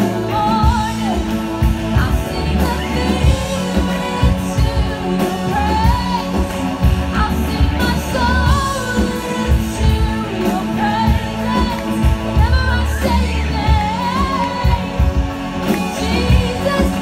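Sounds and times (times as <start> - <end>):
amplified electric guitars: 0.0 - 17.0
woman singing into microphone: 0.0 - 17.0.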